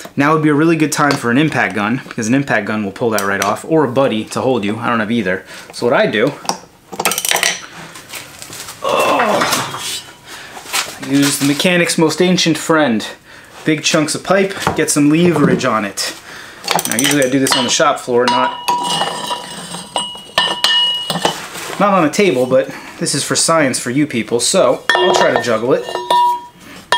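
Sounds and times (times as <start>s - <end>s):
steel hand tools clanking: 16.7s - 21.4s, 24.8s - 26.9s
metallic clatter: 24.9s - 26.6s.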